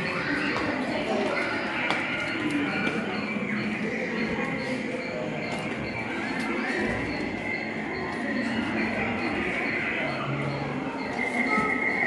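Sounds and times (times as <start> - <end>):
crowd chattering in a hall: 0.0 - 12.0.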